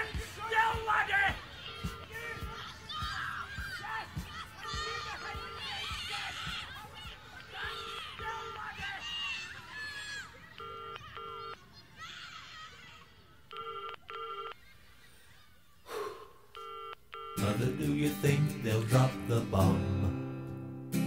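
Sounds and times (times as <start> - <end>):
children's voices babbling: 1.0 - 13.5.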